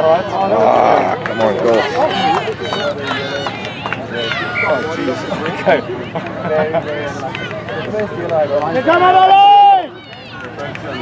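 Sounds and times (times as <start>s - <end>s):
people shouting and calling out: 0.0s - 11.0s.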